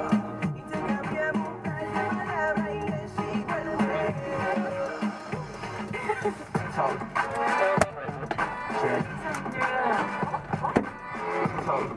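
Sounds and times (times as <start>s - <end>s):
song on car stereo: 0.0s - 11.9s.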